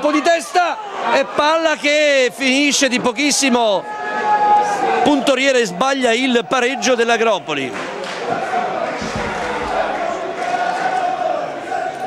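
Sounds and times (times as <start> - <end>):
football crowd shouting and chanting: 0.0 - 12.0.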